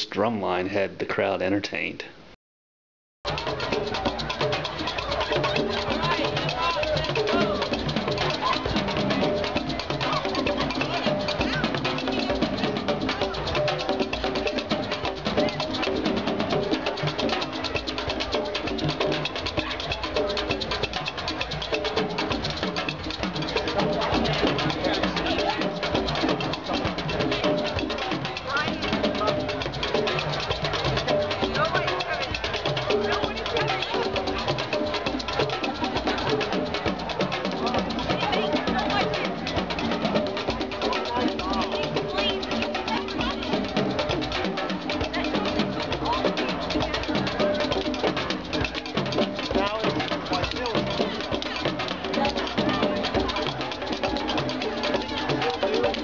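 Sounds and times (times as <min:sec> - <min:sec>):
crowd talking: 0:03.3 - 0:56.0
hand drums playing: 0:03.3 - 0:56.0.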